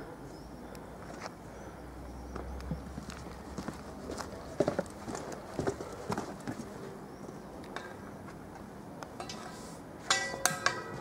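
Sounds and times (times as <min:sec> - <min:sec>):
footsteps on stone paving: 0:02.4 - 0:06.7.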